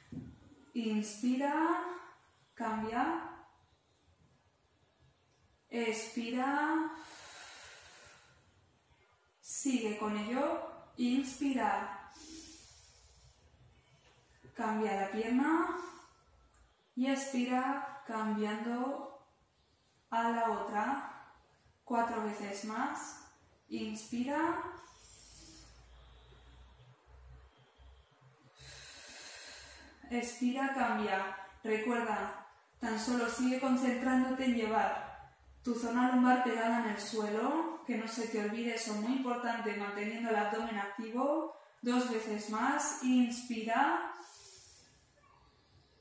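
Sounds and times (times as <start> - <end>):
woman breathing: 6.9 - 8.7, 12.0 - 14.4, 15.7 - 16.5, 24.7 - 26.8, 28.4 - 30.1, 44.1 - 46.0
woman exhaling breathily: 12.1 - 13.4, 24.8 - 25.9.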